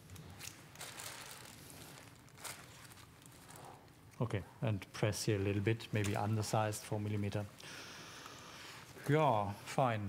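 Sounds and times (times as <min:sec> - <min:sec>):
soft handling rustling: 0:00.0 - 0:04.4, 0:05.3 - 0:09.9.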